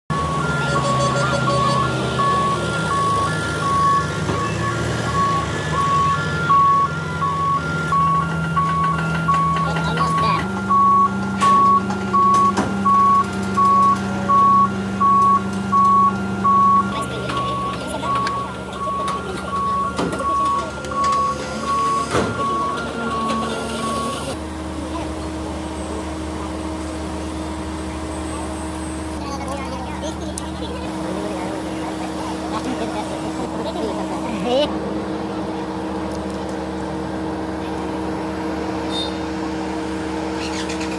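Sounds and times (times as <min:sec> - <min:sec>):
warning alarm beeping: 0:00.1 - 0:24.4
diesel engine running under load: 0:00.1 - 0:40.9.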